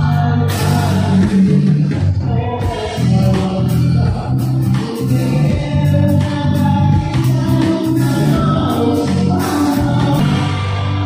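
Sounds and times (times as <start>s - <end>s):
guitar: 0.0s - 11.0s
person singing: 0.0s - 11.0s.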